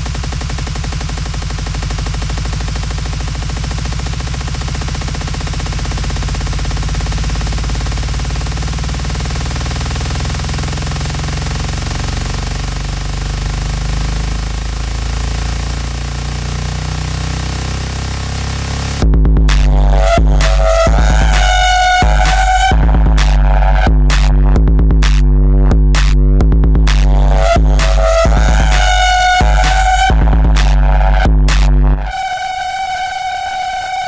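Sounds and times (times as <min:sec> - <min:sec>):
distorted bass pulses: 0:00.0 - 0:34.0
electronic dance music: 0:00.0 - 0:34.0.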